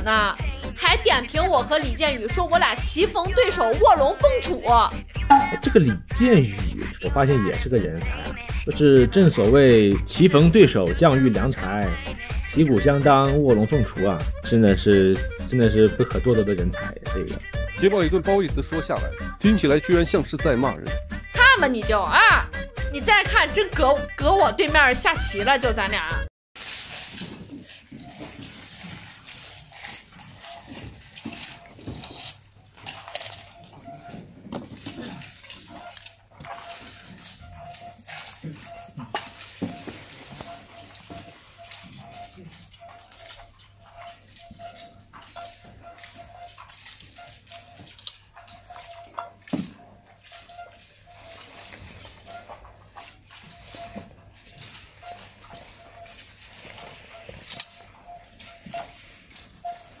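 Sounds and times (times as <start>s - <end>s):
short repeated tone: 5.2s - 6.0s.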